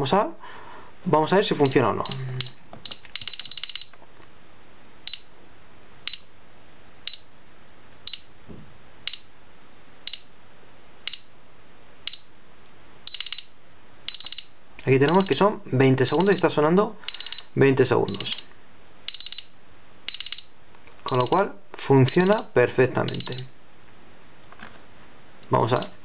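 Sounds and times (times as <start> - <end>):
alarm keypad beeps: 1.6 - 4.0, 5.1 - 5.3, 6.1 - 6.3, 7.1 - 7.3, 8.1 - 8.3, 9.1 - 9.3, 10.1 - 10.3, 11.1 - 11.3, 12.1 - 12.3, 13.1 - 18.5, 19.1 - 23.6, 25.7 - 26.0.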